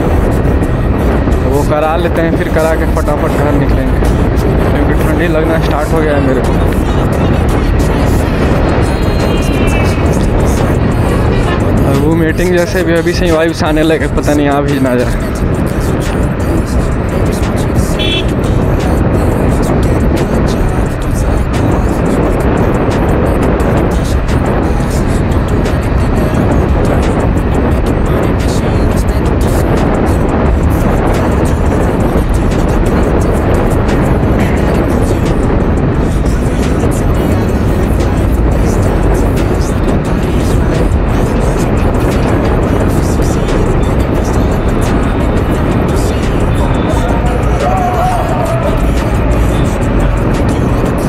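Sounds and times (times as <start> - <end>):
motorcycle engine cruising: 0.0 - 51.0
music: 0.0 - 51.0
wind rushing over microphone: 0.0 - 51.0.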